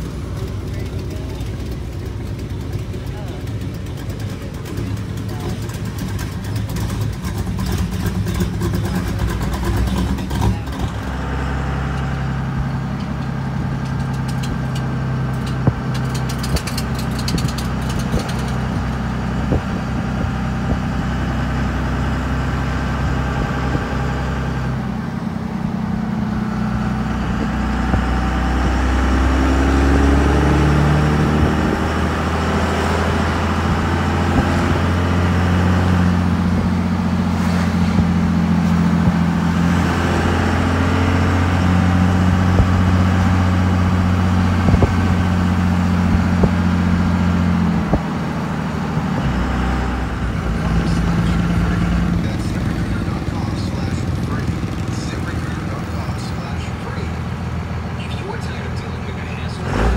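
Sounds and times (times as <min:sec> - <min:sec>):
vehicle engine and road drone: 0:00.0 - 0:59.9.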